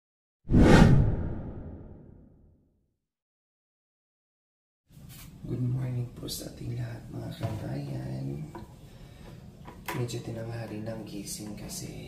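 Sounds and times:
deep whoosh: 0.5s - 2.2s.

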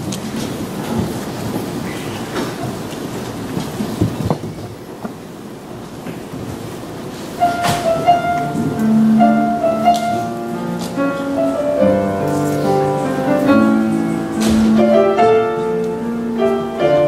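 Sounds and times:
people shuffling and rustling: 0.0s - 17.0s.

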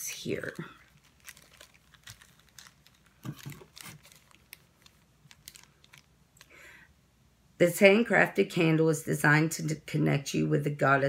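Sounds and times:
plastic bag crinkling: 0.1s - 6.8s
paper rustling: 0.4s - 6.1s.

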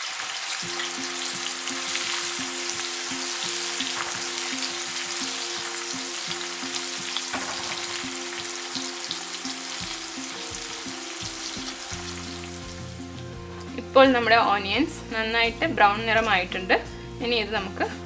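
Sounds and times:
onions sizzling in hot oil: 0.0s - 14.8s.

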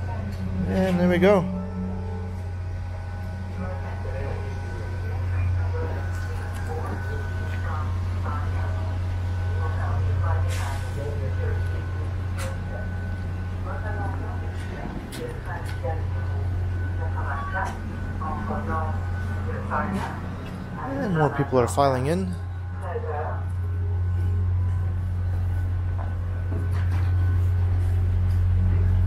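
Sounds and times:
indistinct voices: 0.0s - 26.2s
diesel engine idling: 0.0s - 29.0s.

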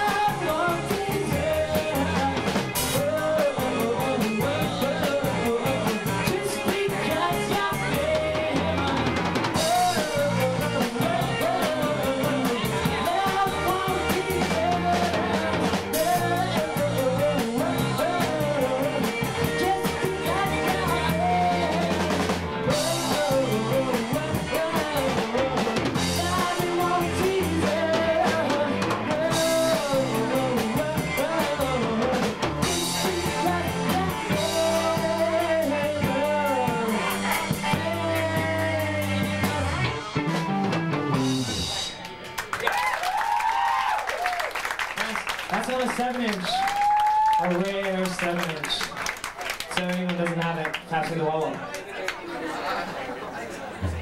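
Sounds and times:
person singing: 0.0s - 40.0s
electric guitar: 0.0s - 43.2s
drum kit: 0.0s - 44.3s.

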